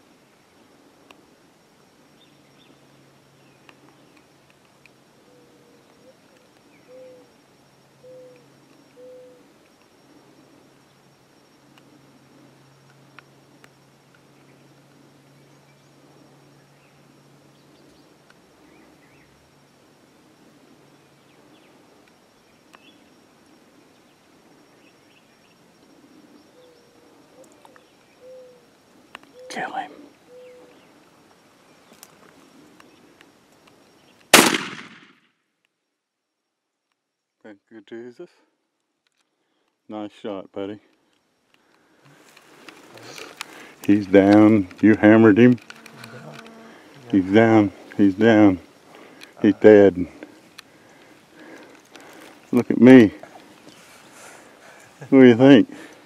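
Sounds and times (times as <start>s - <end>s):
faint steady hum: 0.0s - 56.0s
shotgun shot with echo: 34.3s - 35.2s
low hooting notes: 43.8s - 50.2s.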